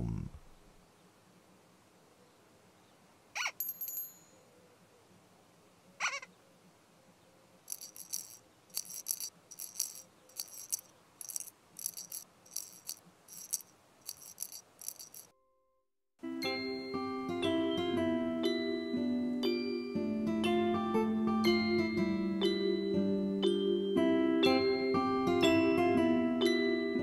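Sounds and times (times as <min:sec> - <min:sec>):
shaker rattle: 0:07.7 - 0:15.3.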